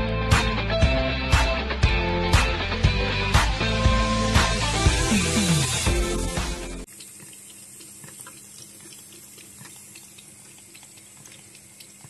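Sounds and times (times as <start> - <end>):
water running from tap: 4.3 - 12.0
cat lapping water: 6.9 - 12.0.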